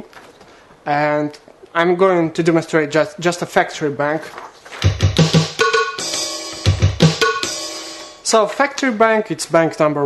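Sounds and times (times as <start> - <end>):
drum machine pattern: 4.8 - 8.4.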